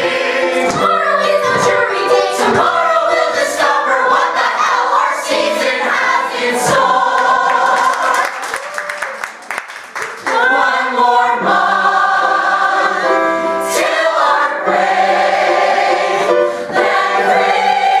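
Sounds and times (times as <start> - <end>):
choir singing in harmony: 0.0 - 8.4, 10.2 - 18.0.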